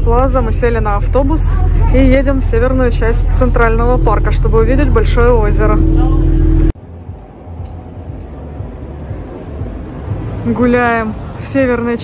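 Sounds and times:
bus engine hum: 0:00.0 - 0:12.0
city street rumble: 0:00.0 - 0:12.0.

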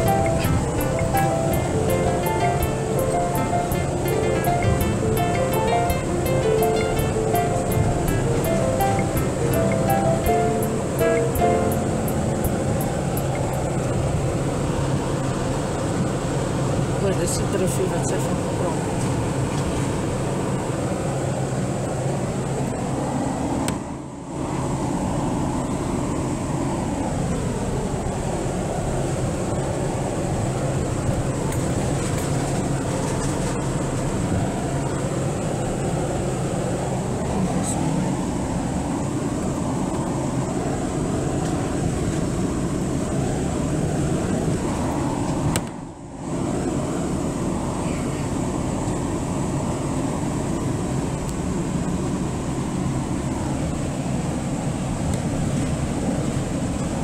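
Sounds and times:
car driving on gravel: 0:30.6 - 0:35.2.

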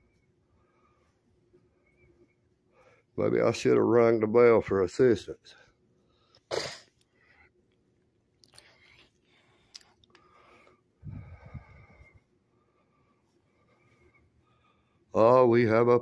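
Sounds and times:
sharp breath close to microphone: 0:10.2 - 0:15.0.

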